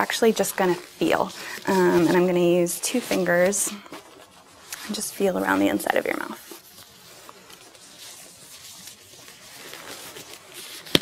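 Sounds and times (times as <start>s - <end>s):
latex gloves rustling: 0.0s - 11.0s.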